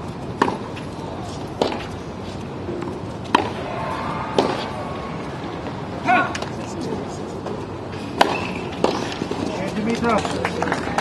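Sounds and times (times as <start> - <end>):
tennis ball hitting court: 0.3 - 2.0, 2.7 - 4.8, 8.2 - 10.3
racquet striking tennis ball: 0.4 - 0.7, 1.6 - 1.9, 2.8 - 4.8, 8.2 - 9.5.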